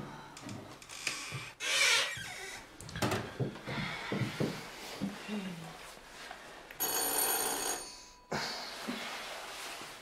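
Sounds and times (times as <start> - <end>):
electric doorbell ringing: 6.8 - 8.3.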